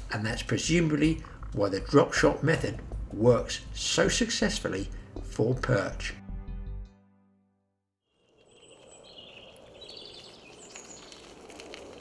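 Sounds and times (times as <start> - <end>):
small birds chirping and warbling: 8.2 - 11.7.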